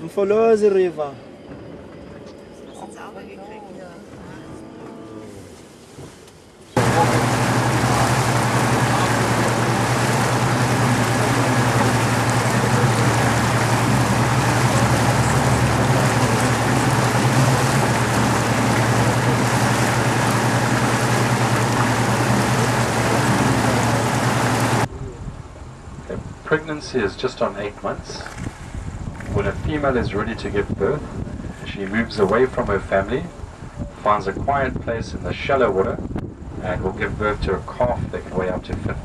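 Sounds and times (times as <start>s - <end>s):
boat engine droning: 1.2s - 33.9s
rush of wind and water: 6.8s - 39.0s.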